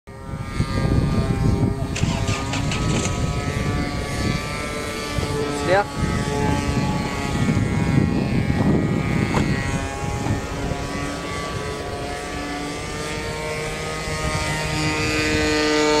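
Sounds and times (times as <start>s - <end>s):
steady motor drone: 0.1s - 16.0s.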